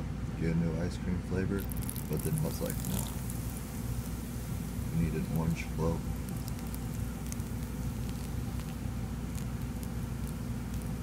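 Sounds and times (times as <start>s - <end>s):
low background hum: 0.0s - 11.0s
soda pouring and fizzing: 1.5s - 11.0s.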